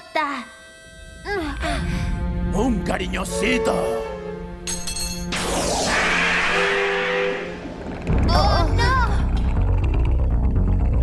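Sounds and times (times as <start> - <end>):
hissing whoosh: 5.3 - 9.7
deep rumble: 5.3 - 11.0
wavering warbling sounds: 5.3 - 11.0.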